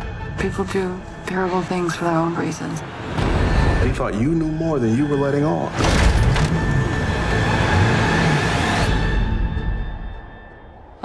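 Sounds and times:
loud dense roar: 0:06.8 - 0:09.4.

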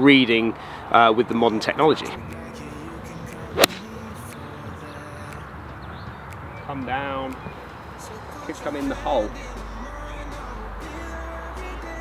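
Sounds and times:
golf club swish: 0:03.5 - 0:03.9
golf club striking ball: 0:03.6 - 0:03.9.

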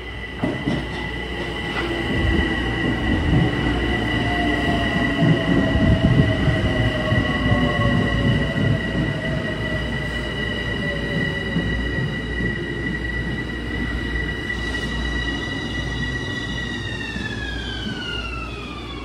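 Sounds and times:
train wheels rumbling: 0:00.0 - 0:19.0.

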